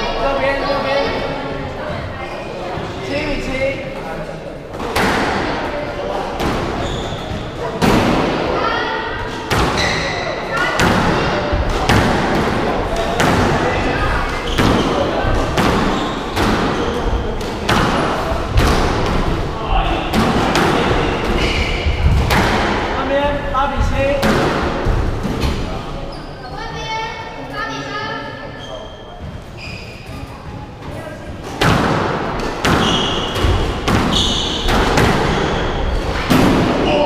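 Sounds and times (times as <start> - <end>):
squash ball hits: 4.8 - 5.7, 7.8 - 8.5, 9.5 - 19.4, 20.1 - 23.0, 24.2 - 25.7, 31.5 - 37.0
shoes squeaking on wooden floor: 6.7 - 7.6, 9.4 - 10.6, 12.9 - 22.3, 28.5 - 31.6, 32.4 - 36.2.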